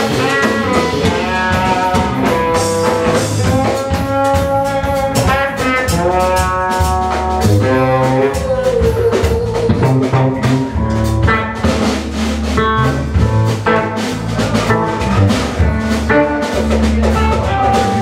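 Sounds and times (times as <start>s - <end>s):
congas: 0.0s - 18.0s
gliding lead guitar notes: 0.0s - 18.0s
rock band playing instrumental: 0.0s - 18.0s.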